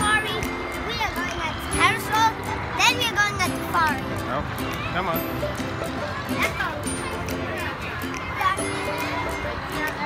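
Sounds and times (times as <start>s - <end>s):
child talking: 0.0s - 4.2s, 6.2s - 10.0s
music playing: 0.0s - 10.0s.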